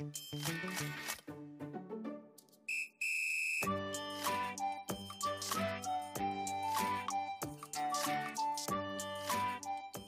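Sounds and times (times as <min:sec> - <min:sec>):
background music: 0:00.0 - 0:02.7, 0:03.6 - 0:10.0.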